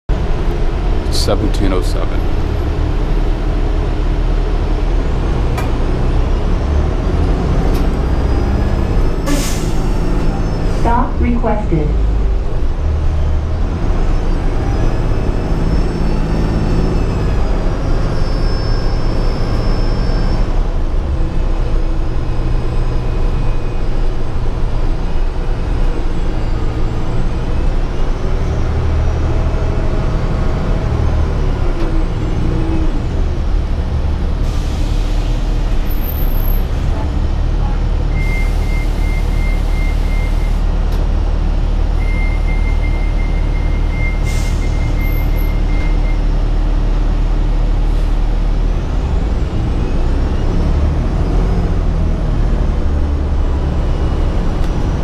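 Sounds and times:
bus engine drone: 0.1 - 55.0.

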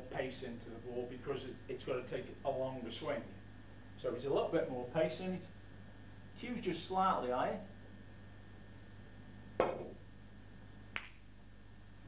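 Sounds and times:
cue tip striking ball click: 9.6 - 10.0.

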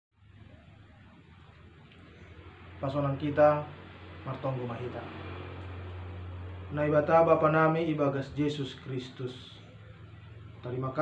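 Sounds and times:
steady low hum: 0.2 - 11.0.

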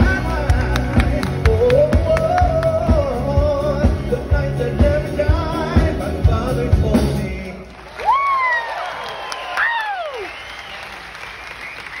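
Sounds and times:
audience applauding and cheering: 0.0 - 3.3, 7.3 - 12.0
person whooping: 8.0 - 10.6.

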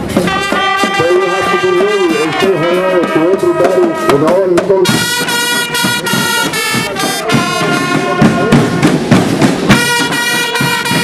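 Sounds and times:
snare drum strokes: 0.0 - 11.0.

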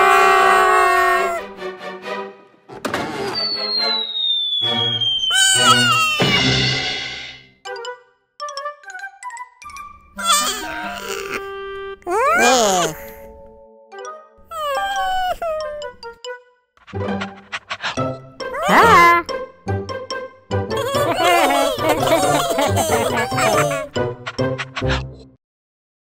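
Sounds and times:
background music: 0.0 - 4.0, 5.0 - 25.4
falling high whistle: 3.2 - 7.1
cartoon whoosh: 3.4 - 7.0, 17.3 - 19.2
cartoon cat meow-like vocalisation: 5.3 - 6.5, 10.2 - 11.3, 12.1 - 13.1, 14.5 - 15.8, 18.6 - 19.3, 20.7 - 23.9.

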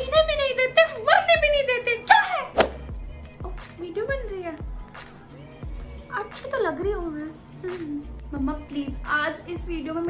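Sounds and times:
sharp thunk: 2.6 - 2.9.

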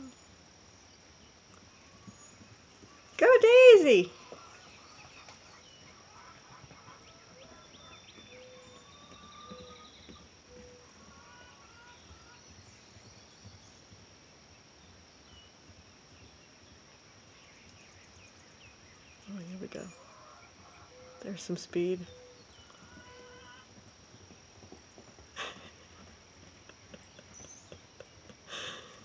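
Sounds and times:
high insect drone: 0.0 - 29.0.

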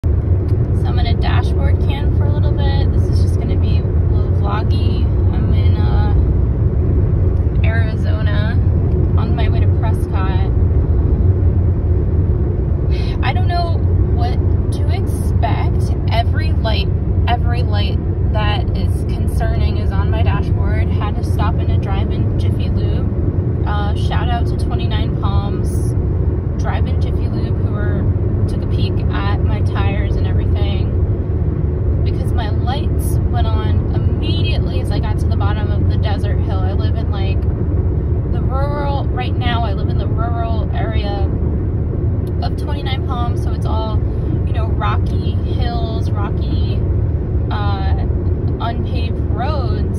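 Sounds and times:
car cabin road rumble: 0.0 - 49.9.

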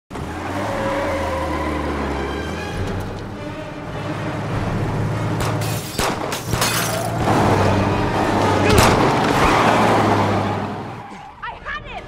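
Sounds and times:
car engine accelerating: 0.1 - 5.7, 7.1 - 11.2.

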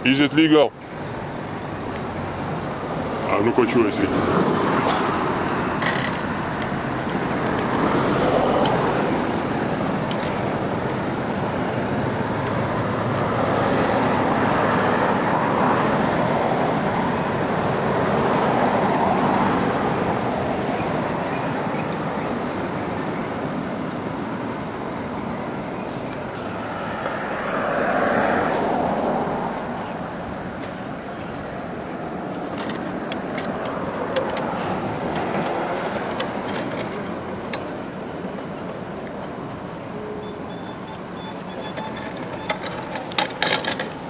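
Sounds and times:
road traffic rushing: 0.0 - 44.0.

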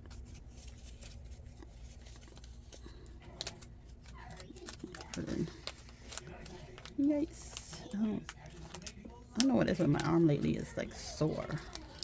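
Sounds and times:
low room hum: 0.0 - 12.0
paper bills rustling: 0.0 - 12.0.

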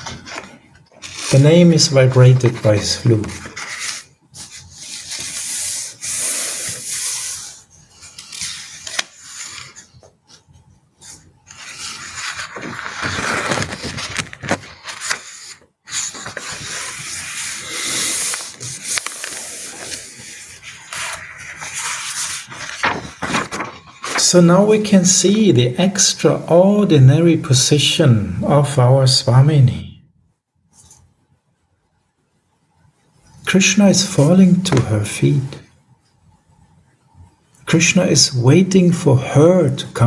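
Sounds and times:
rubbing and scraping: 0.0 - 24.5.

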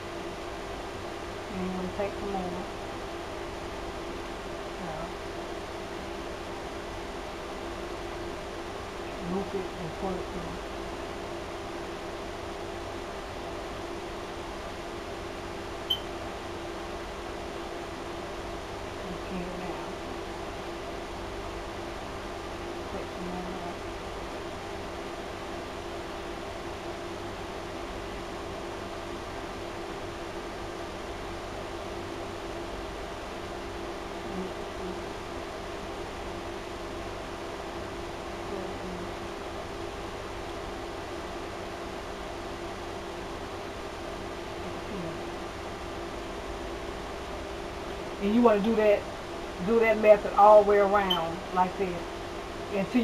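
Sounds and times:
low constant hum: 0.0 - 53.0.

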